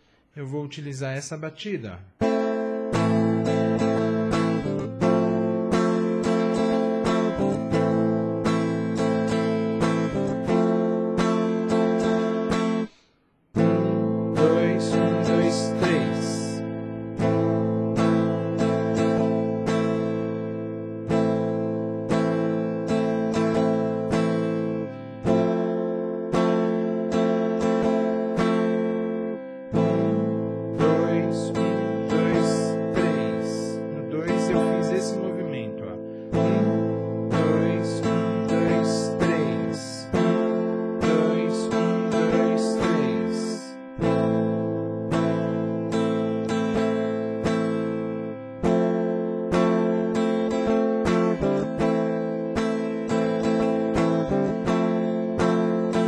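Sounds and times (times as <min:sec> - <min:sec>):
clean electric guitar strumming: 0:02.0 - 0:56.0.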